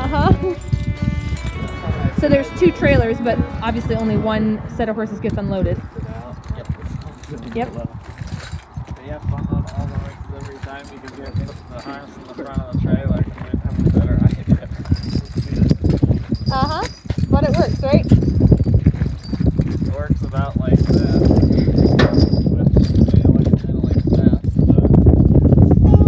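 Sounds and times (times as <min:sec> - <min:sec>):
horse hooves on gravel: 0:00.0 - 0:24.2
man talking: 0:01.6 - 0:02.2, 0:05.8 - 0:08.1, 0:08.9 - 0:16.0, 0:18.7 - 0:26.0.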